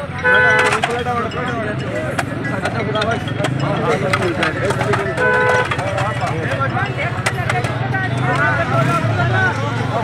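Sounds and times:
many people talking: 0.0s - 10.0s
vehicle horn: 0.2s - 0.8s, 5.2s - 5.8s.

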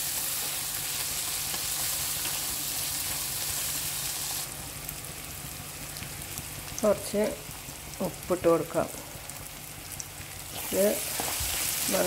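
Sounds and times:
vegetables sizzling in hot oil: 0.0s - 12.0s
spatula stirring in a pan: 10.5s - 12.0s.

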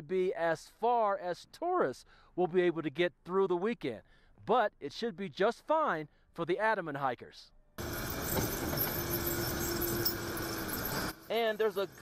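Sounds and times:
diesel engine running: 7.8s - 12.0s
tyre chains clinking: 7.8s - 12.0s.

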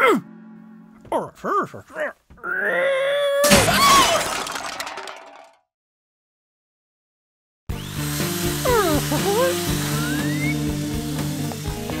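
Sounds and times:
cartoon crash with clinks: 3.4s - 5.6s.

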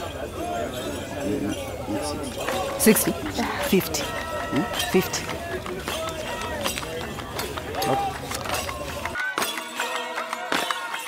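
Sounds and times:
people talking: 0.0s - 9.2s
market background noise: 0.0s - 9.6s.

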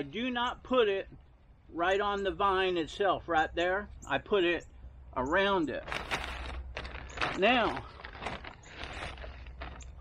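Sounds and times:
low steady rumble: 0.0s - 10.0s
plastic bag rustling: 5.8s - 10.0s
hand scooping pellets: 5.9s - 10.0s.

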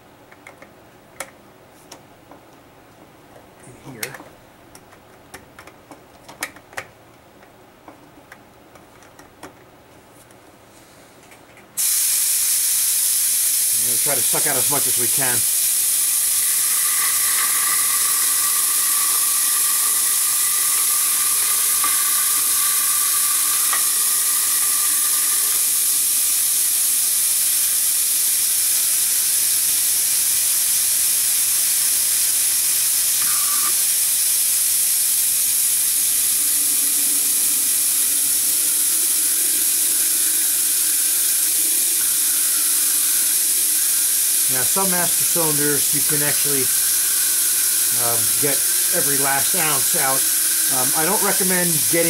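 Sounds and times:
vacuum tool hissing: 11.8s - 52.0s.

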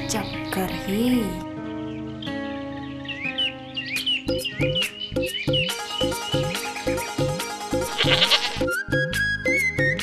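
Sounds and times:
film music with steady beat: 4.0s - 10.0s
goat kid bleating: 7.9s - 8.7s.

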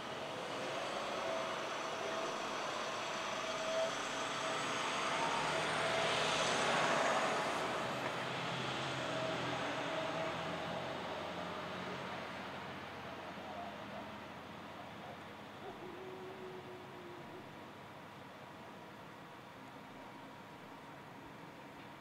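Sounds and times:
vehicle passing: 0.1s - 12.9s.

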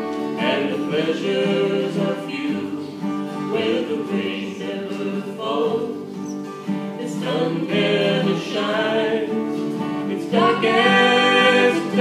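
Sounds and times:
man and woman singing folk song: 0.0s - 12.0s
strummed acoustic guitars: 0.0s - 12.0s.

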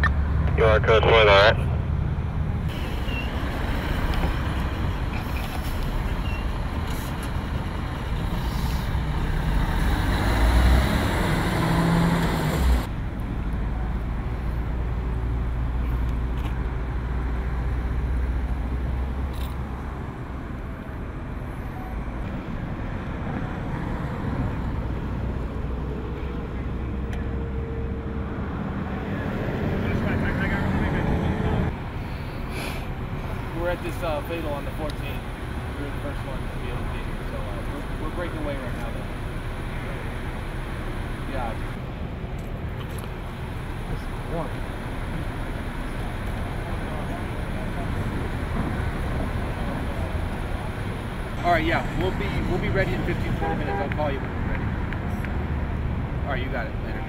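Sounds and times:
diesel engines idling: 0.0s - 57.0s.

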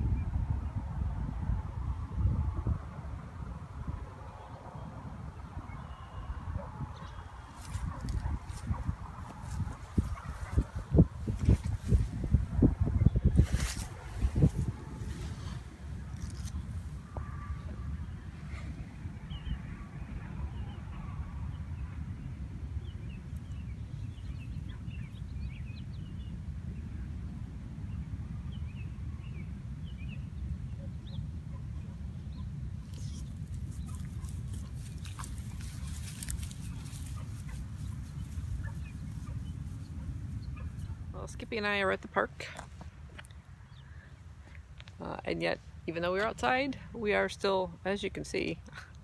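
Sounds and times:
wind rumble on microphone: 0.0s - 49.0s.

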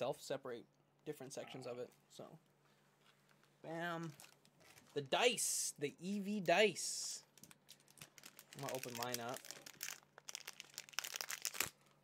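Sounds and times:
plastic packaging crinkling: 4.0s - 5.2s, 6.0s - 12.0s.

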